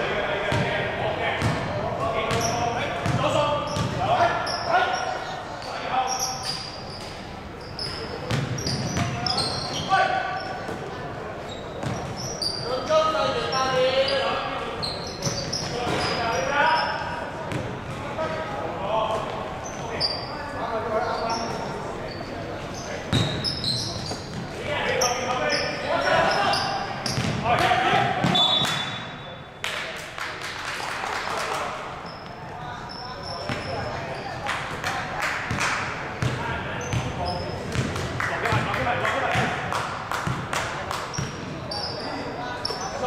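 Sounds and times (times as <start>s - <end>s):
basketball bouncing: 1.4s - 1.7s, 2.3s - 3.2s, 3.8s - 4.0s, 8.3s - 9.2s, 27.1s - 27.4s, 36.2s - 38.7s, 40.2s - 40.5s
sneaker squeaks: 1.4s - 18.4s, 19.2s - 29.6s, 31.9s - 34.4s, 36.2s - 37.9s, 41.1s - 43.0s.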